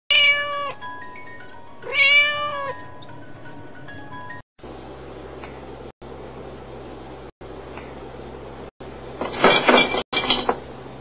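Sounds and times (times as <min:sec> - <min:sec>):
soft background music: 0:00.1 - 0:04.4
cat meowing: 0:01.8 - 0:02.8.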